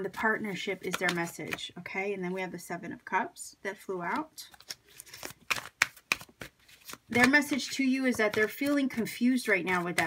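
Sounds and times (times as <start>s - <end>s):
cards being shuffled: 0.1s - 1.7s, 4.1s - 10.0s.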